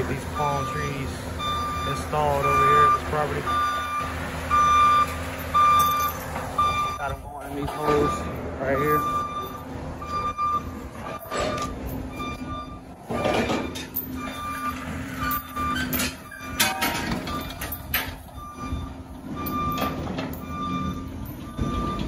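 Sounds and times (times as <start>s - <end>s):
backup alarm beeping: 0.0s - 22.0s
engine running: 0.0s - 22.0s
knocks and clanks: 3.6s - 22.0s.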